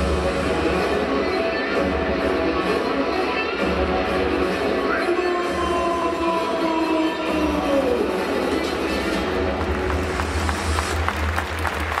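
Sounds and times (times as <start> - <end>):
music over sound system: 0.0 - 12.0
crowd clapping: 9.2 - 12.0.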